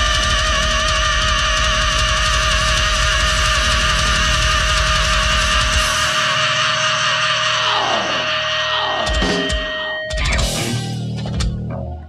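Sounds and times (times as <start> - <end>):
vocal scream: 0.0 - 10.7
distorted guitars: 0.0 - 12.0.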